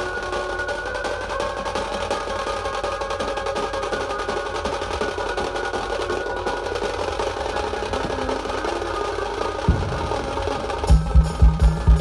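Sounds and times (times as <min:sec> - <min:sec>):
street band playing: 0:00.0 - 0:12.0
heavy low drum hit: 0:09.7 - 0:12.0.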